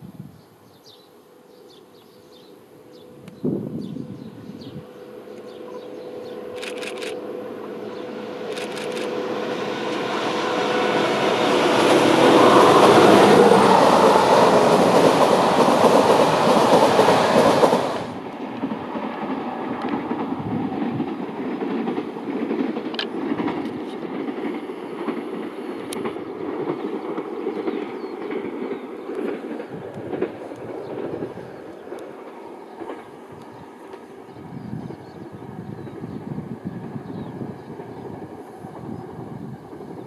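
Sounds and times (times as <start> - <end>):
distant train: 0.0 - 40.0
diesel locomotive passing: 1.0 - 40.0.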